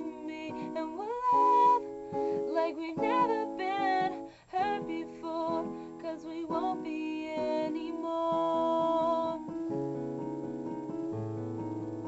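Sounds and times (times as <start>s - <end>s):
woman singing: 0.0s - 9.6s
soft instrumental accompaniment: 0.0s - 12.0s.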